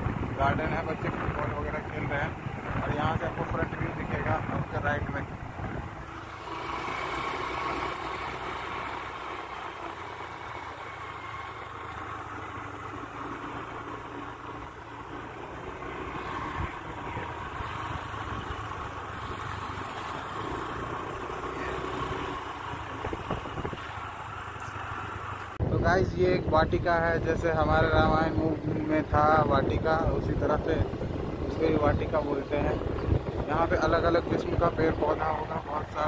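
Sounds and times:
road noise: 0.0 - 36.0
wind: 0.0 - 36.0.

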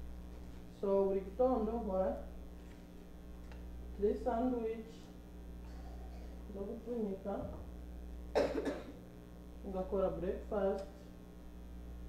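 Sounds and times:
person coughing: 5.6 - 6.4, 8.4 - 9.0.

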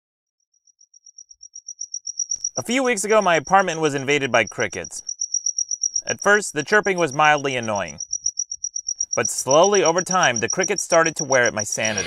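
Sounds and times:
cricket chirping: 0.5 - 12.0.

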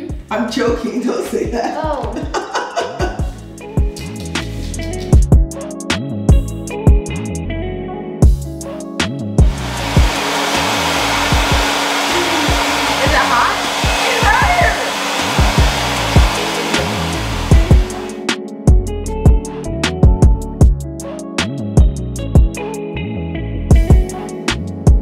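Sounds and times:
background music with guitar: 3.1 - 9.8, 15.6 - 25.0
hair dryer blowing: 9.4 - 18.4.

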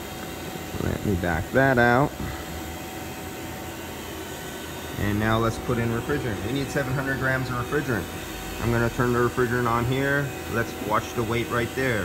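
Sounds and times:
machine hum: 0.0 - 12.0.

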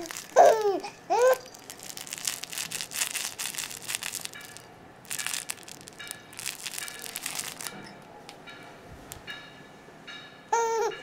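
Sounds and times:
crinkly plush toy rustling: 0.0 - 8.0.

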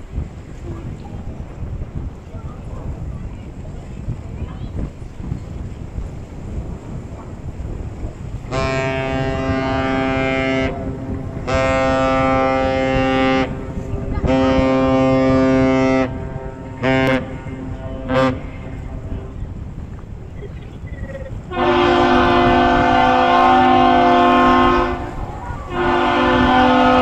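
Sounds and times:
wind and waves rumble: 0.0 - 27.0
deep ship horn blasts: 6.5 - 19.9, 21.4 - 27.0.

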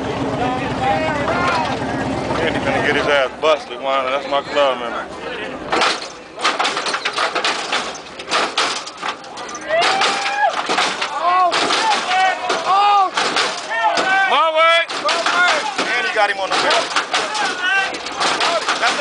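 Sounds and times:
cars bouncing and slamming: 0.0 - 3.6, 5.5 - 19.0
men shouting and hollering: 0.1 - 5.7, 9.0 - 19.0.

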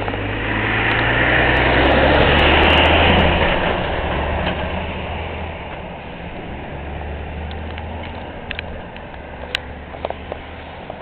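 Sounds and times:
vehicle driving past: 0.0 - 11.0.

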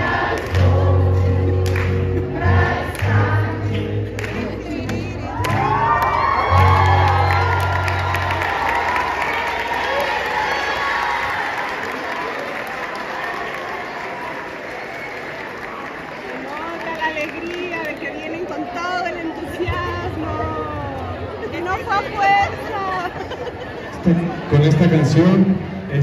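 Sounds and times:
children's choir singing: 0.0 - 5.8
people clapping: 0.0 - 19.7
children cheering and shouting: 5.3 - 14.2.

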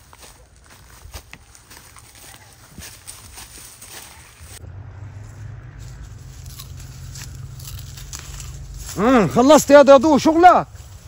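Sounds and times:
footsteps crunching on dry leaves: 0.0 - 4.6, 5.2 - 11.0.

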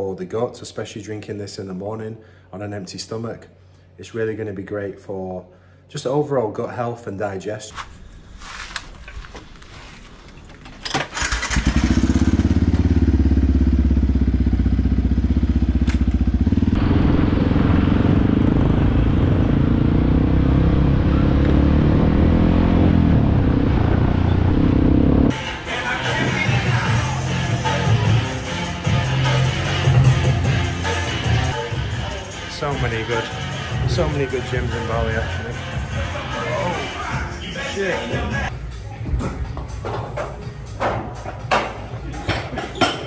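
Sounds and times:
motorbike engine revving: 10.9 - 25.4
music: 25.3 - 43.0.

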